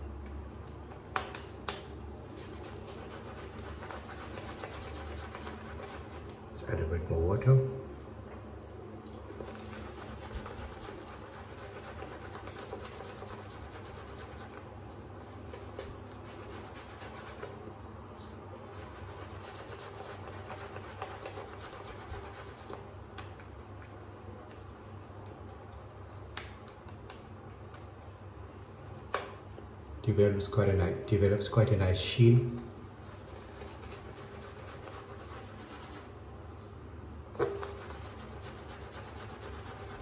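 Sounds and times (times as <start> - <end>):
small crackling clicks of lather: 0.3 - 2.1, 22.7 - 30.0
shaving brush swishing lather: 2.2 - 6.4, 9.3 - 17.6, 18.8 - 22.8, 33.0 - 36.2, 37.4 - 40.0.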